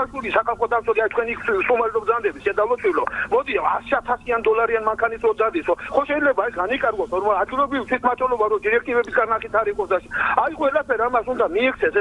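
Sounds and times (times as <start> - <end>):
person talking into microphone: 0.0 - 12.0.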